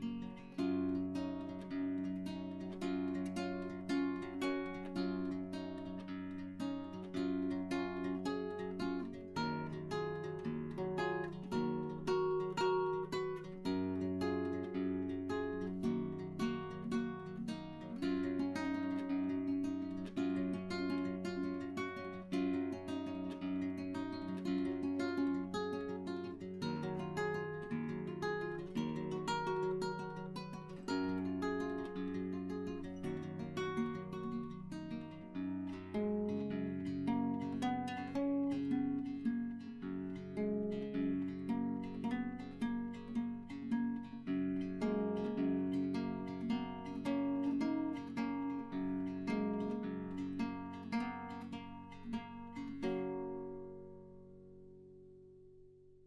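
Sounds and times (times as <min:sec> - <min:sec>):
acoustic guitar plucked notes: 0:00.0 - 0:56.0.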